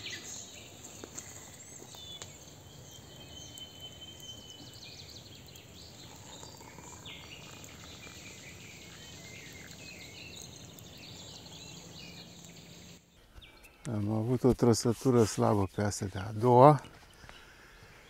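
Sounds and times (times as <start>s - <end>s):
birds chirping and calling: 0.0s - 18.0s.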